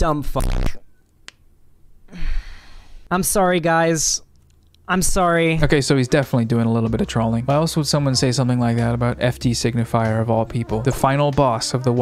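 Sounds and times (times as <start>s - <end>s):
breathy sigh: 2.1s - 3.1s.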